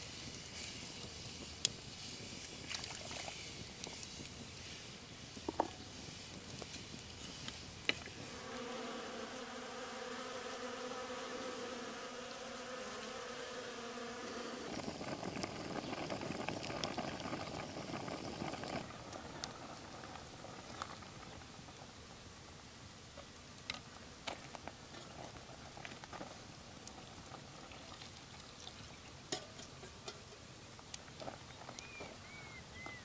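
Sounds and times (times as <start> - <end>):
insect buzzing: 8.1 - 18.7.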